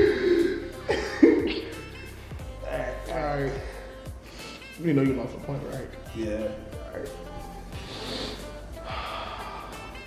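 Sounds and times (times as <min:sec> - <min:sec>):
man stifling laughter: 0:00.0 - 0:01.8
background music: 0:00.0 - 0:10.0.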